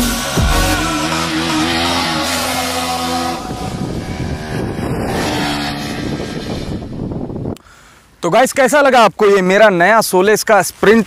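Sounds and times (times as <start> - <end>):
electronic music: 0.0 - 2.6
motorcycle engine running: 0.0 - 7.5.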